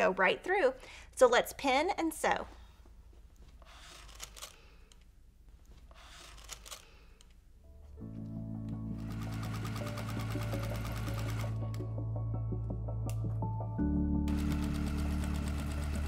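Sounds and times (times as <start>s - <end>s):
background music: 7.6s - 16.0s
sewing machine stitching: 9.0s - 11.6s, 14.3s - 16.0s.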